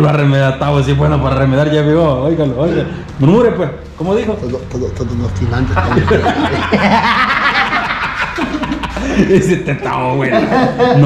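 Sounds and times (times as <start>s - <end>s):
men laughing: 5.6s - 11.0s.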